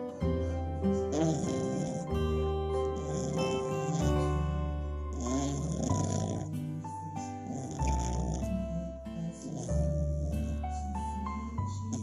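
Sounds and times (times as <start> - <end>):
background music with held notes: 0.0 - 12.0
puppy snoring: 0.0 - 12.0.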